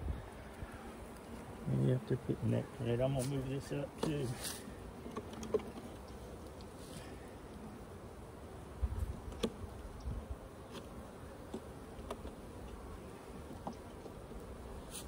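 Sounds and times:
honeybees buzzing: 0:00.0 - 0:15.0.

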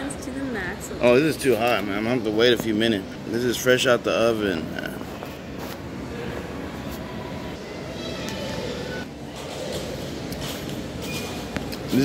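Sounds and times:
food court background hum: 0:00.0 - 0:12.0.

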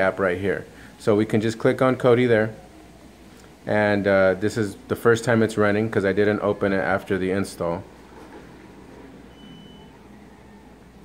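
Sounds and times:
low steady hum: 0:00.0 - 0:11.0
faint high-pitched tone: 0:09.1 - 0:11.0.

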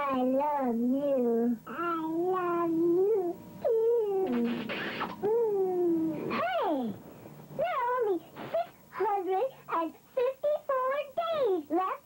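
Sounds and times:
sped-up chipmunk voices: 0:01.8 - 0:07.0.

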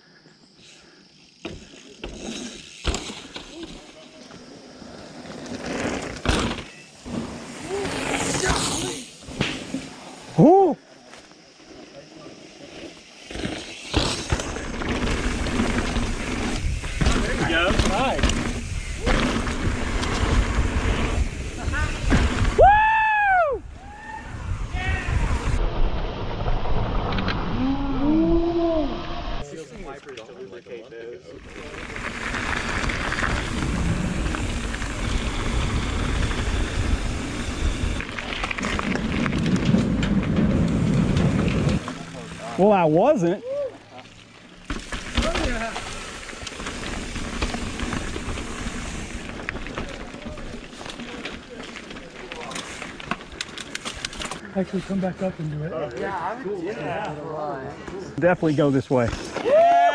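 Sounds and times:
bike tyres rumbling on trail: 0:00.8 - 0:29.4, 0:31.3 - 0:57.3
riders whooping and shouting: 0:07.5 - 0:09.2, 0:10.2 - 0:11.0, 0:21.4 - 0:25.6, 0:42.4 - 0:44.1, 0:59.3 - 0:59.9.

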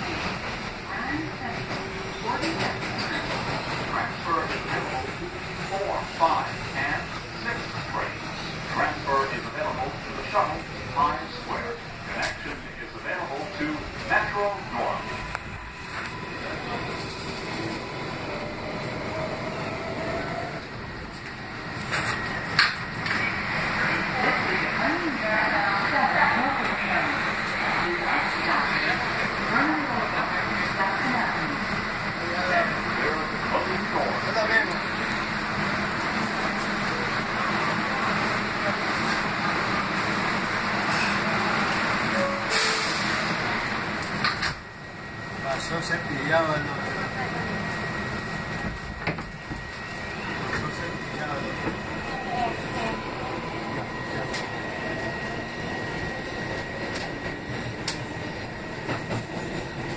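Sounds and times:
passengers chattering: 0:00.0 - 0:59.9
subway car running noise: 0:00.0 - 0:59.9.

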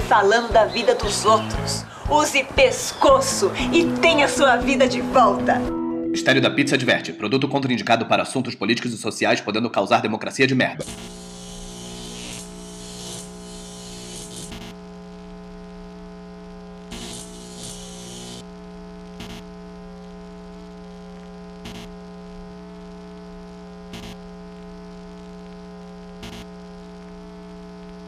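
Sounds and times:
static hiss bursts: 0:10.8 - 0:15.2, 0:15.8 - 0:28.0
steady electrical hum: 0:10.8 - 0:28.0.

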